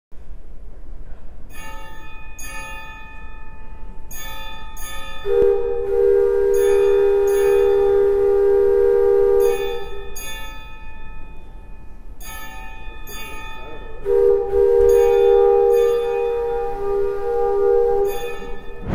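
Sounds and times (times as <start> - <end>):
bell-like chimes: 1.5 - 5.4, 6.6 - 7.8, 9.4 - 14.0, 14.9 - 16.4, 18.1 - 18.9
loud steady tone: 5.3 - 10.1, 14.1 - 18.9.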